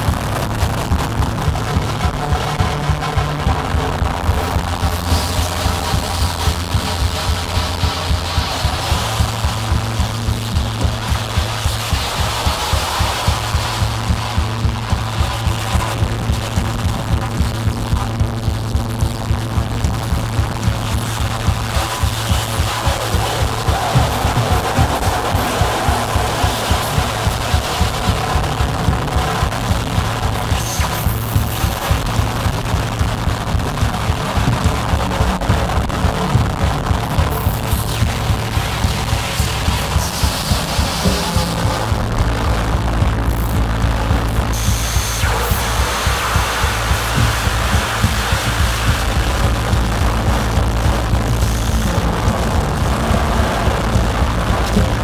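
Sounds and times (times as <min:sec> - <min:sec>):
droning synthesizer bass: 0:00.0 - 0:55.0
fast drum hits: 0:00.0 - 0:55.0.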